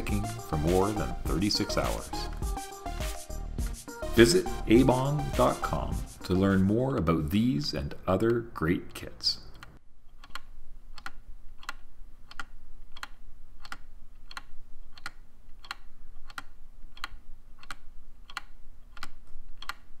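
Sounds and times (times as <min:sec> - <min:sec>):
wooden clock ticking: 0:00.0 - 0:02.6, 0:04.3 - 0:20.0.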